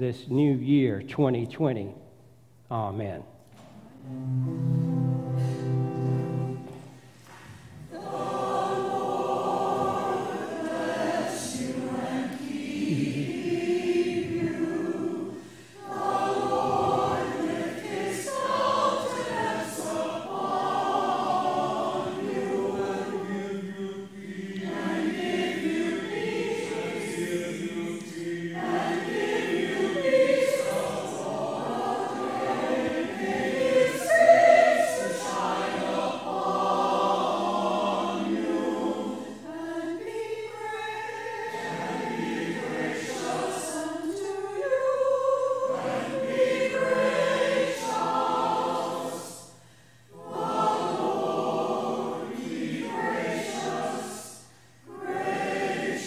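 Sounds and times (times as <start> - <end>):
choir singing slowly: 3.8 - 56.0.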